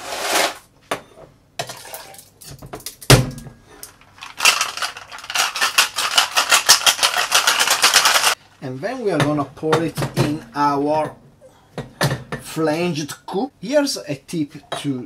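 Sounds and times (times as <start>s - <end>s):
ice rattling in metal shaker: 4.2s - 8.4s.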